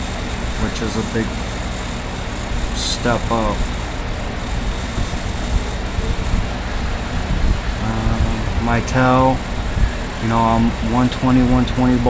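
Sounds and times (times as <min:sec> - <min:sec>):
low rumbling hum: 0:00.0 - 0:12.0.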